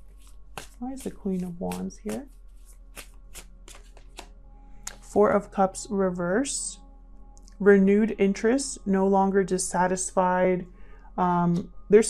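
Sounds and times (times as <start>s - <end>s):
cards being shuffled: 0.0s - 4.3s
faint background music: 0.0s - 12.0s.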